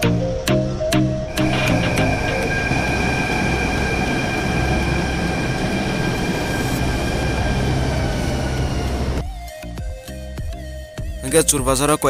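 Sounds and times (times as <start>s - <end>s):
train running rumble: 0.0s - 9.3s
high electrical whine: 0.5s - 9.2s.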